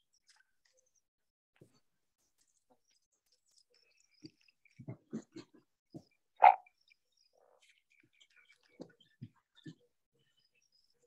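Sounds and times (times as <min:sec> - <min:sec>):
frog croak: 0:06.4 - 0:06.6.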